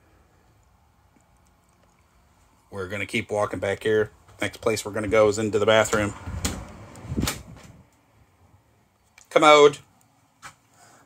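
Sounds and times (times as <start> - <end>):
low rumble of movement: 5.0 - 7.9.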